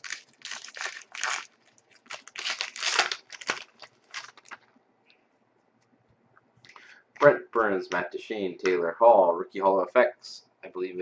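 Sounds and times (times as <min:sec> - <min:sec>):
wrapper tearing and crinkling: 0:00.0 - 0:04.7.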